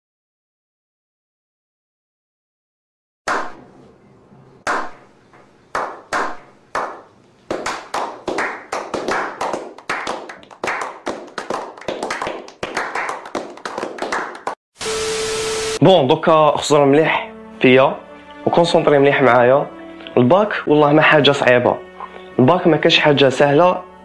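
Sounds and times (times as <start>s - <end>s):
men clapping: 5.8s - 14.6s.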